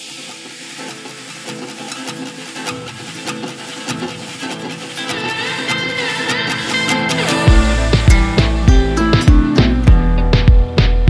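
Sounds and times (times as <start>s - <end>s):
rhythmic tune with percussion: 0.1s - 11.0s.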